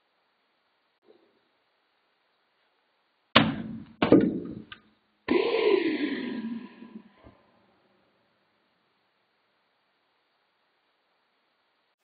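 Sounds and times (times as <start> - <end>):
sharp thuds: 3.4 - 4.8.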